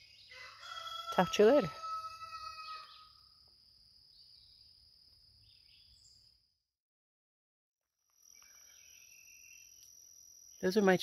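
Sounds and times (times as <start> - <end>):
rooster crowing: 0.3 - 3.2.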